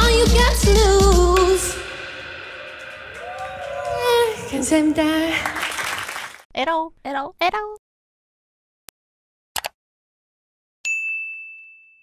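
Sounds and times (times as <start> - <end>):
bright bell ding: 10.8 - 12.0.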